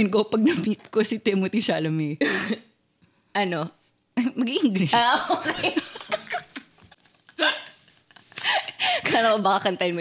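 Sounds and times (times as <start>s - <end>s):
women laughing: 4.8s - 6.8s.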